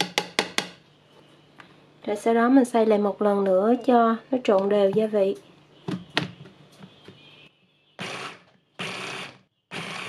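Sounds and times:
metal spoon tapping plastic bowl: 0.0s - 0.8s.

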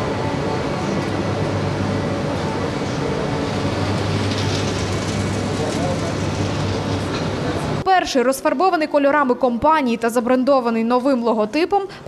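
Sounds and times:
train rumble with low hum: 0.0s - 7.8s
murmur of crowd voices: 0.0s - 9.3s.

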